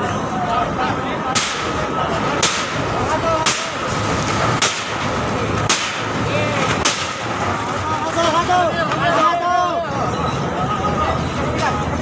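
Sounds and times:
crowbar striking wood: 5.7 - 6.0.

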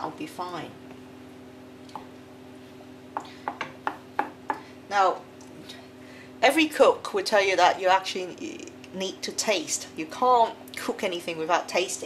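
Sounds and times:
steady low hum: 0.0 - 12.0
spoon knocking against pan: 3.2 - 4.6.

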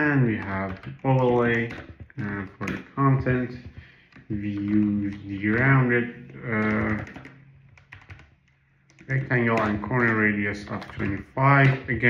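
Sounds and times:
computer keyboard keystrokes: 0.2 - 12.0.

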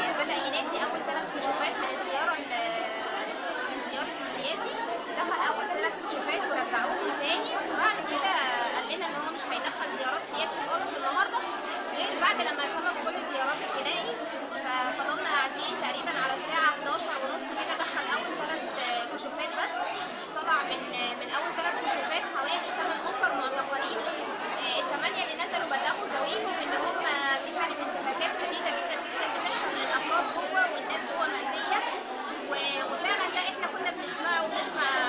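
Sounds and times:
crowd chatter: 0.0 - 35.0.

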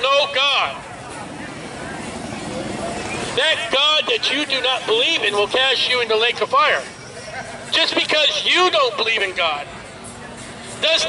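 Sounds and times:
street traffic rush: 0.0 - 11.0.

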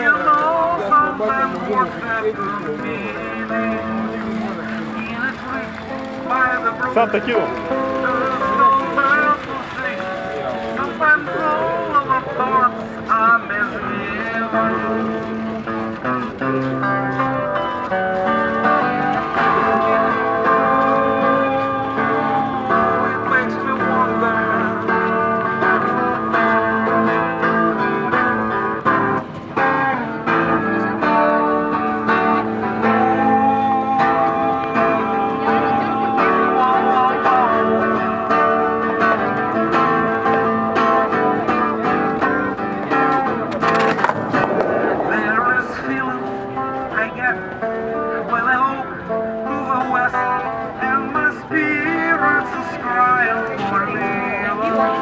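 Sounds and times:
electric guitar melody: 0.0 - 55.0.

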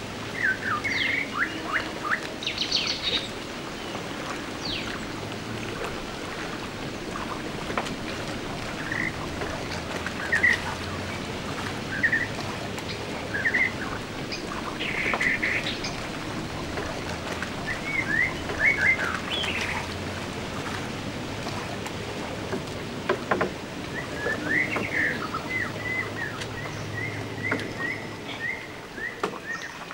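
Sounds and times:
steady outdoor hiss: 0.0 - 29.9.

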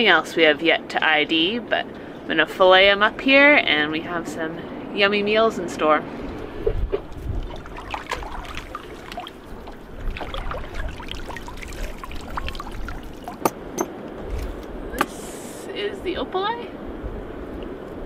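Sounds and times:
seawater splashing and dripping: 6.3 - 13.8.

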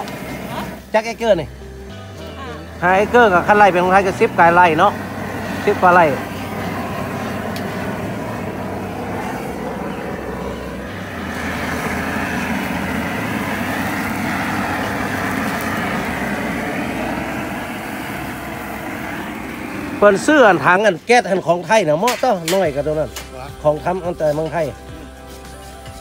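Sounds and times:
propane torch burning: 0.0 - 26.0.

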